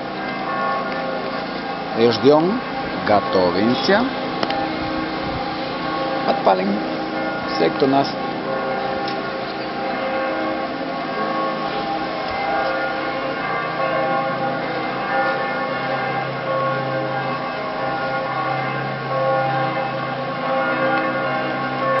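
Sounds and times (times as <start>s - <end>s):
church bells pealing: 0.0s - 22.0s.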